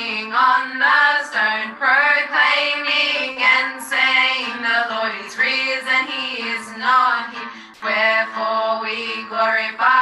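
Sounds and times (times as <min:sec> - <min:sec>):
girls singing a hymn: 0:00.0 - 0:10.0.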